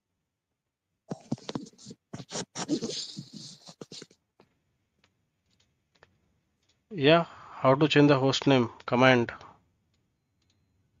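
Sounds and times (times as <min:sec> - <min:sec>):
scratching and clicking noise: 0:01.1 - 0:06.8.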